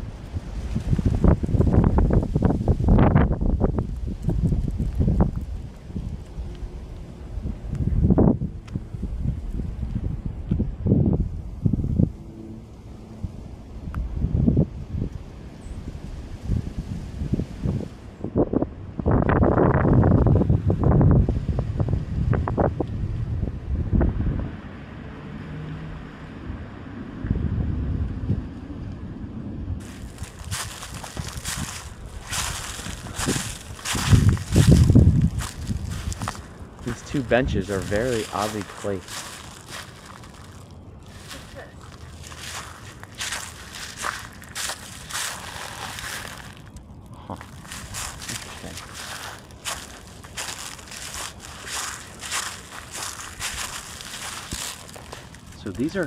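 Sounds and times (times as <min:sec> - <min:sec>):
wind buffeting microphone: 0:00.0 - 0:12.4, 0:13.2 - 0:24.7, 0:26.4 - 0:56.0.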